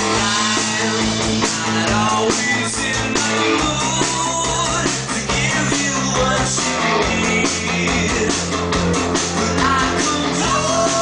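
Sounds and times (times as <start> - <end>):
drum kit beats: 0.0 - 11.0
electric bass: 0.0 - 11.0
electric guitar: 0.0 - 11.0.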